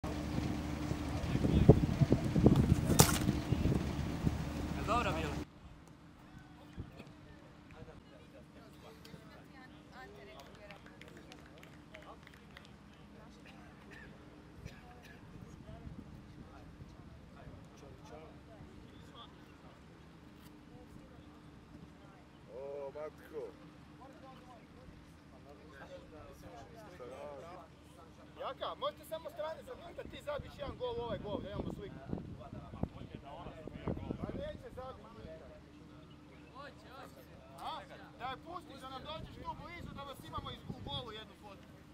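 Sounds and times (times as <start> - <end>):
wind on microphone: 0.2 - 5.4, 30.4 - 34.6
running steps on grass: 1.0 - 5.4
football kicked: 2.4 - 3.8.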